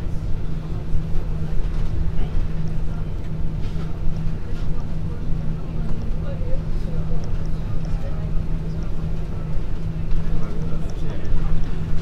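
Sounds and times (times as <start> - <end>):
aircraft cabin engine rumble: 0.0 - 12.0.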